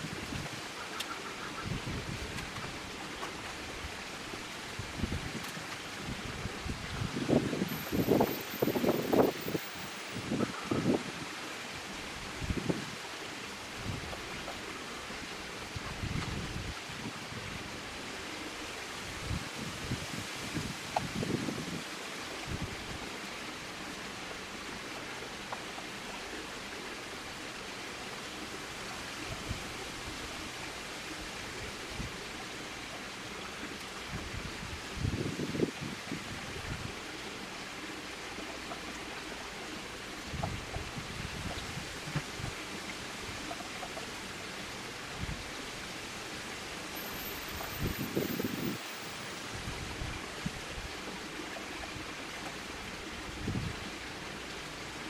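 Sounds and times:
outdoor background hiss: 0.0 - 55.0
wind gusts on microphone: 1.6 - 2.9, 4.6 - 11.4, 12.1 - 13.0, 15.7 - 17.9, 19.0 - 23.0, 34.0 - 37.0, 40.2 - 42.6, 47.4 - 51.0, 53.2 - 54.0.

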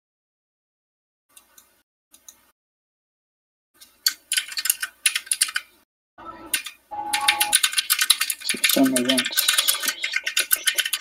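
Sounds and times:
computer keyboard typing: 4.0 - 5.7, 6.5 - 11.0.

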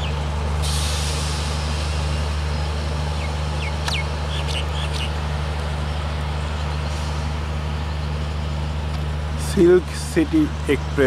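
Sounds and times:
diesel locomotive engine drone: 0.0 - 11.0.

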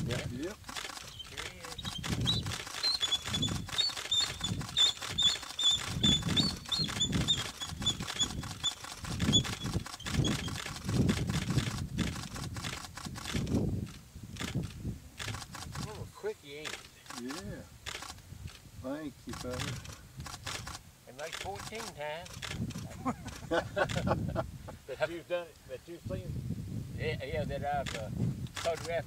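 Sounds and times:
short clicks: 0.6 - 16.0, 27.8 - 29.0
eagles high piping calls: 1.0 - 10.6.

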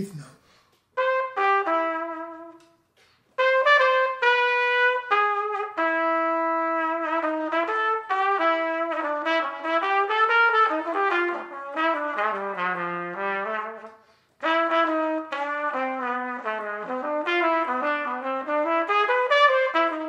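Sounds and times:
solo trumpet playing jazz: 0.9 - 20.0.

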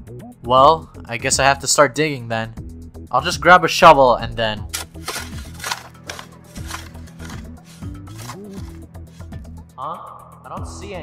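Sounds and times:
background music with sliding bass: 4.0 - 9.8
cartoon shovel strikes into ground: 4.7 - 8.6.

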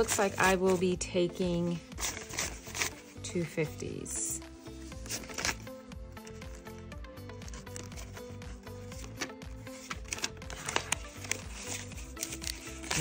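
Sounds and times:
paper banknotes rustling: 0.0 - 0.9, 1.8 - 3.2, 4.9 - 13.0
background music with low beat: 0.0 - 13.0
banknotes snapping: 9.0 - 13.0.

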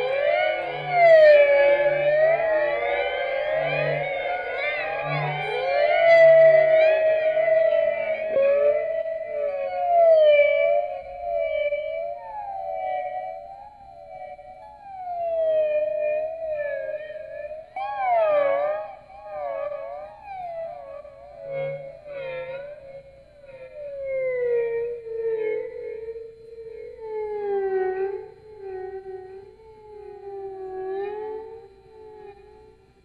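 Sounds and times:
electric guitar wavering tone: 0.0 - 33.0.

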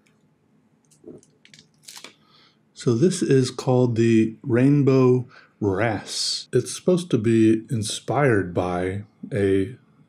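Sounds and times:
plastic sleeve crinkling: 1.0 - 2.1.

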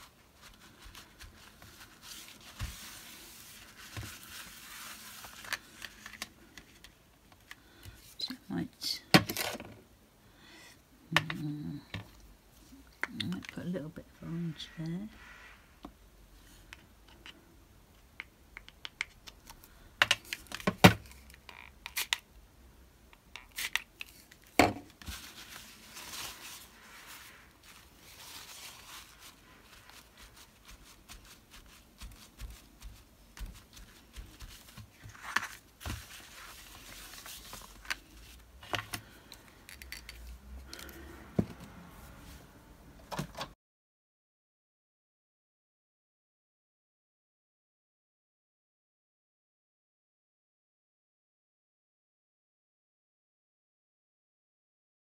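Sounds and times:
paper towel rustling: 0.0 - 6.2, 24.9 - 38.8.

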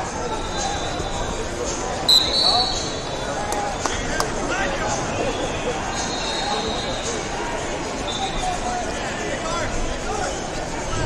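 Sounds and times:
chatter of voices: 0.0 - 11.0
whistle blast: 2.1 - 3.0.

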